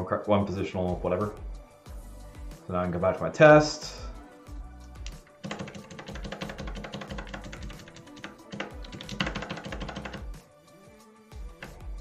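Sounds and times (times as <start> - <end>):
computer keyboard keystrokes: 5.0 - 10.3.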